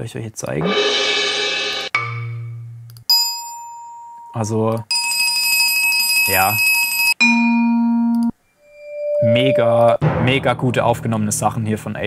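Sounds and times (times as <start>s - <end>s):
soft bowed note: 8.6s - 11.3s.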